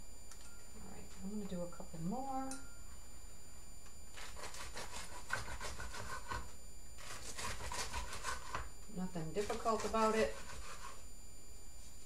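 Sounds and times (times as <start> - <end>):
bread knife sawing crusty loaf: 4.2 - 8.7, 9.4 - 11.0.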